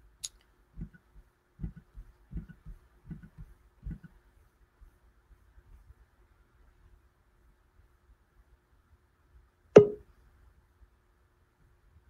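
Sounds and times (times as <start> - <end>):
short pitched knock with ring: 9.8 - 10.0.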